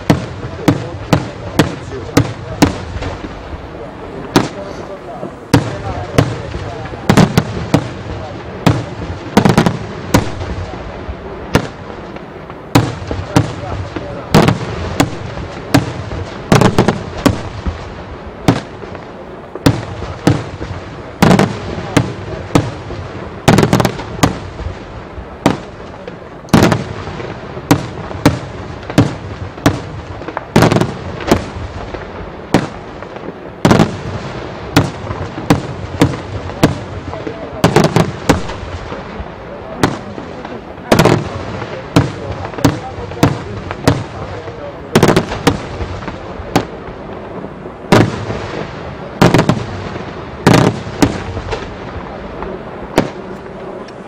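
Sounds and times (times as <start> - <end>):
fireworks shells bursting with sharp bangs: 0.0 - 54.0.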